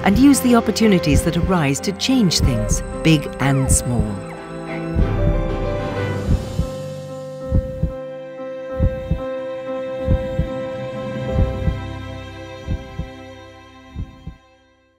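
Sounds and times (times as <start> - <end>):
held music chord: 0.0 - 14.6
heartbeat double thump: 1.2 - 1.5, 2.3 - 4.2, 5.0 - 5.6, 6.2 - 6.8, 7.5 - 8.0, 8.8 - 9.2, 10.0 - 10.5, 11.4 - 11.8, 12.6 - 13.2, 14.0 - 14.4.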